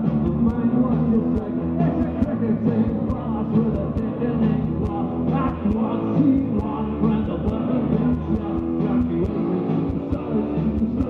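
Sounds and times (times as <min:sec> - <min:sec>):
bass guitar: 0:00.0 - 0:11.0
live rock band: 0:00.0 - 0:11.0
steady drum beat: 0:00.0 - 0:11.0.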